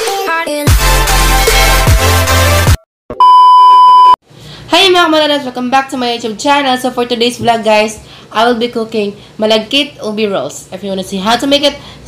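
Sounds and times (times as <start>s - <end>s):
steady pure test tone beep: 3.2s - 4.2s.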